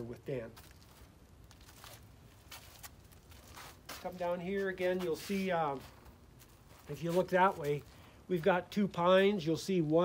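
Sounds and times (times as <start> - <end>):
footstep scuffs and rustles: 0.0 - 10.0
low outdoor background: 0.0 - 10.0.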